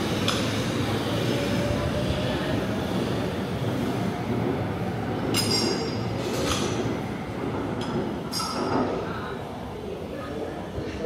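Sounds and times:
metro train rumbling: 0.0 - 11.0.

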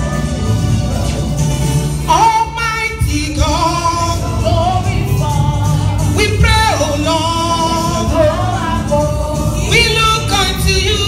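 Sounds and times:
instrumental accompaniment with bass: 0.0 - 11.0
voices singing gospel: 0.0 - 11.0.

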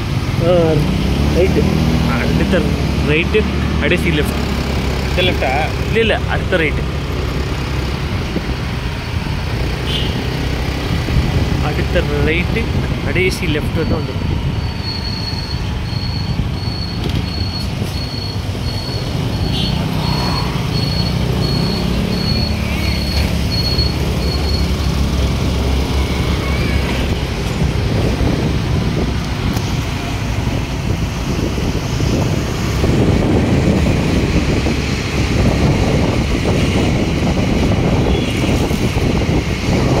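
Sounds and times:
road and wind noise: 0.0 - 40.0
vehicle engine rumble: 0.0 - 40.0
wind on microphone: 7.4 - 12.0, 24.6 - 40.0
short high beeps: 20.2 - 24.7.

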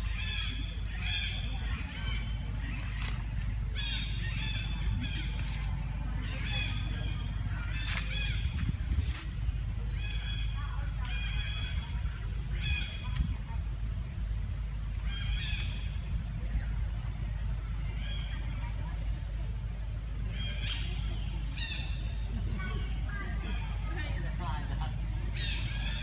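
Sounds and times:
steady low rumble: 0.0 - 26.0.

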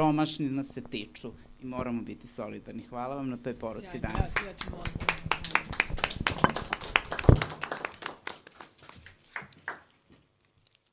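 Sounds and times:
audience applauding: 4.1 - 10.0.

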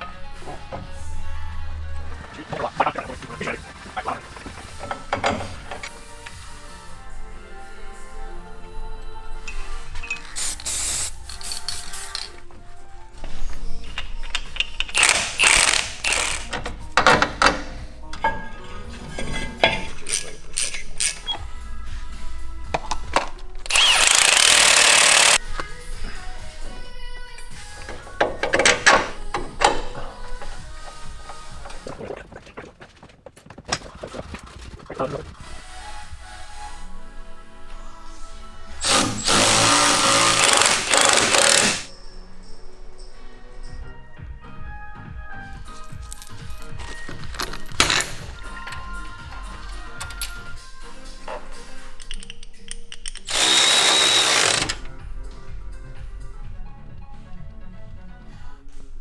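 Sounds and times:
background music: 0.0 - 59.0
hand tools clicking on metal: 22.8 - 25.4
pneumatic tool bursts: 23.7 - 25.4, 38.8 - 41.9, 53.3 - 54.8.

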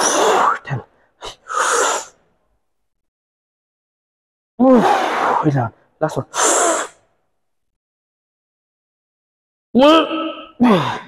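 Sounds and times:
forceful exhales through the mouth: 1.5 - 2.2, 6.4 - 7.0.

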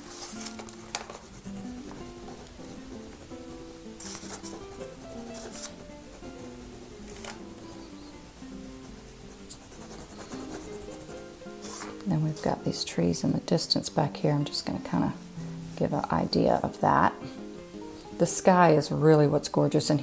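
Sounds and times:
pastel scratching on paper: 0.0 - 12.0
soft background music: 0.0 - 20.0.

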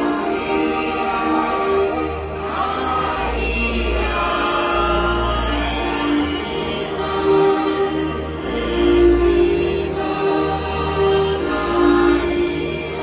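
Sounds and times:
hymn singing: 0.0 - 13.0.

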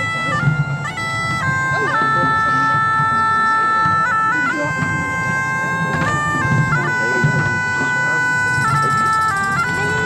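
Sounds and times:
bagpipe playing slow melody: 0.0 - 10.0.

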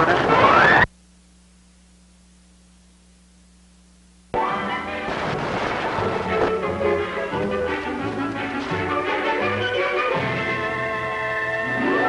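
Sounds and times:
orchestral theme music: 4.4 - 12.0.

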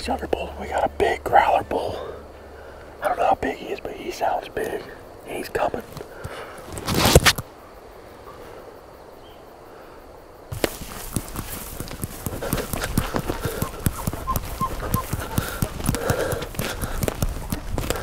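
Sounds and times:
footsteps through dry grass: 10.5 - 18.0.

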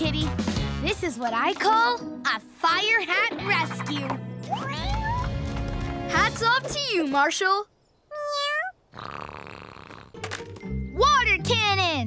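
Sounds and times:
cartoon kitten mewing: 8.1 - 10.1.

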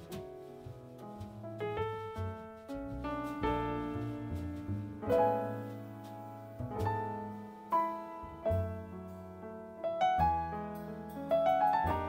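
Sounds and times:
drums: 0.0 - 12.0
grand piano chords: 0.0 - 12.0
rising piano run: 0.0 - 12.0
upright bass: 0.0 - 12.0.

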